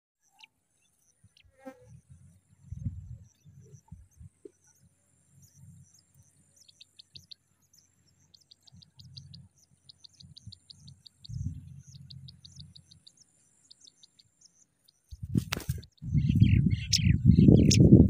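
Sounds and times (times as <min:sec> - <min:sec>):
nestlings begging with high peeps: 0:00.2 - 0:18.0.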